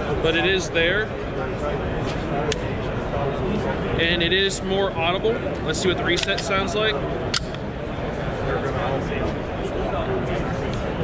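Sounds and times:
crowd voices babbling: 0.0s - 11.0s
pistol action metallic click: 6.1s - 6.5s, 7.3s - 7.7s.

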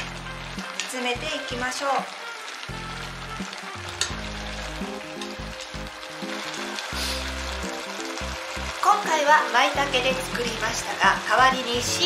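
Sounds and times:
background music: 0.0s - 12.0s
chopsticks stirring: 0.0s - 12.0s
meat sizzling in a pot: 0.0s - 12.0s.

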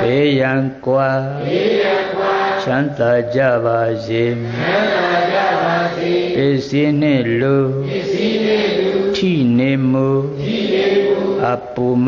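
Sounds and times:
man chanting in sing-song melody: 0.0s - 1.5s, 2.5s - 5.1s, 5.8s - 8.2s, 9.1s - 12.0s.

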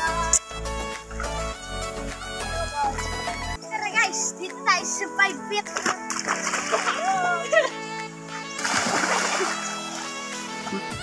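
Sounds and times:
background music: 0.0s - 11.0s
children's voices: 3.6s - 5.8s
water splash: 5.7s - 7.2s, 8.6s - 10.2s.

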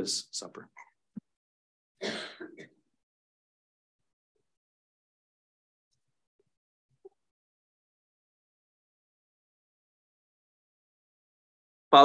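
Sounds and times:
man clearing his throat: 2.0s - 2.7s.

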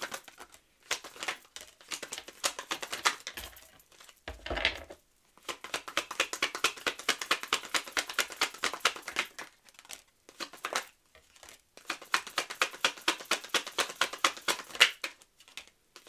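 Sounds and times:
cards being shuffled: 0.0s - 16.0s.

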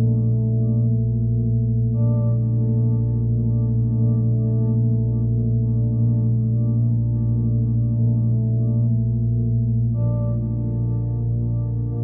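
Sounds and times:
ambient electronic drone music: 0.0s - 12.0s.

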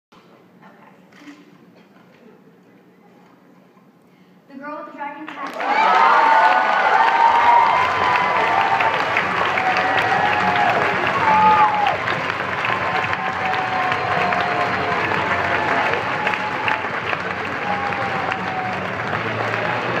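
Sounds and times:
audience applauding: 5.3s - 20.0s
voices calling out and cheering: 5.4s - 20.0s.

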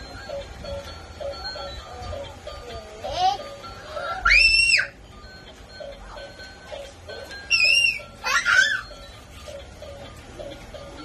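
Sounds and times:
children's music from a television: 0.0s - 11.0s
toddler squealing: 4.0s - 5.0s, 7.5s - 8.9s.

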